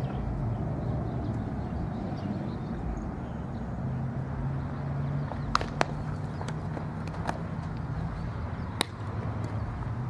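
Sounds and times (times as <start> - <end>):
sharp taps: 5.3 - 7.8.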